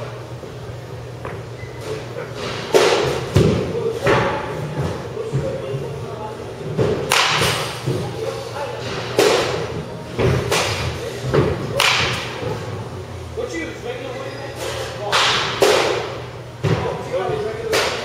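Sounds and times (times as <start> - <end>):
balls striking netting: 6.7 - 8.1, 9.0 - 12.5
bat hitting baseball: 7.1 - 7.7, 11.7 - 12.4.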